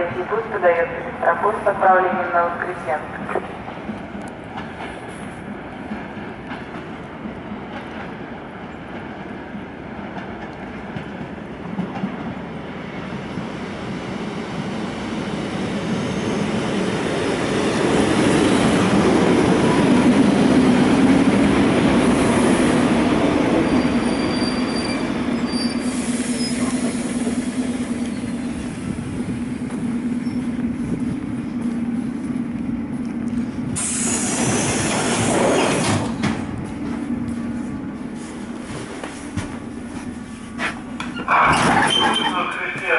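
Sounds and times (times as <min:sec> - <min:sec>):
train wheels rumbling: 0:00.0 - 0:42.9
train wheel squeals: 0:23.6 - 0:28.5, 0:41.1 - 0:42.4.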